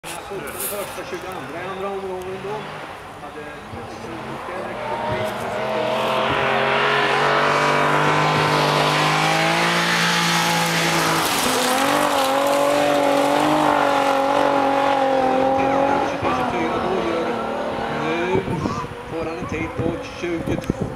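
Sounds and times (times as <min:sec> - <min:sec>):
rally car engine revving: 0:03.7 - 0:20.9.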